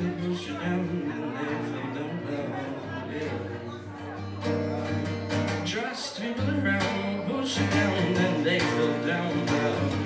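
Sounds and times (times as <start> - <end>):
man singing: 0.0 - 4.3, 5.4 - 10.0
acoustic guitar strumming: 0.0 - 10.0.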